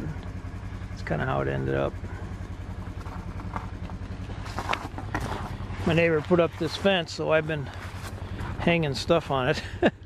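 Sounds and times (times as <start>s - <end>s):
engine idling: 0.0s - 10.0s.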